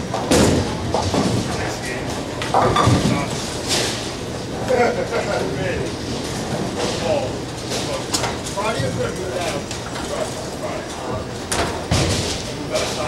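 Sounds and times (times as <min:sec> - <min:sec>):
bowling pins clattering: 0:00.0 - 0:03.5.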